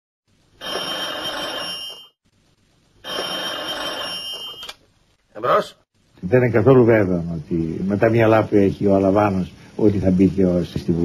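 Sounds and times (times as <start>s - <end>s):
old telephone bell ringing: 0.6s - 2.2s, 3.0s - 4.7s.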